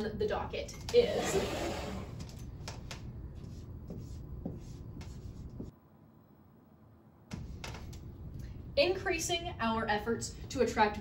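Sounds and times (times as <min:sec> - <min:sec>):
marker writing on whiteboard: 0:02.1 - 0:05.8, 0:07.3 - 0:08.1.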